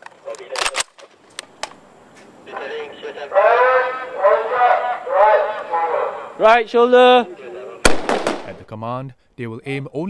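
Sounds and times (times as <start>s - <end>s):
men shouting commands: 2.5s - 7.8s.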